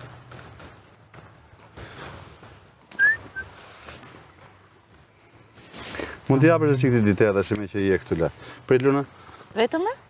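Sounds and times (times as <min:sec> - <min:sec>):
person whistling: 0:02.9 - 0:03.5.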